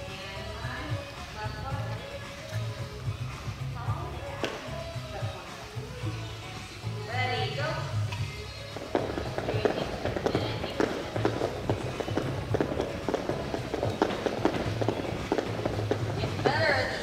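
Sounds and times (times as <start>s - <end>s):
background music: 0.0s - 17.0s
feet landing: 8.8s - 16.9s
jump ropes slapping floor mat: 8.8s - 17.0s.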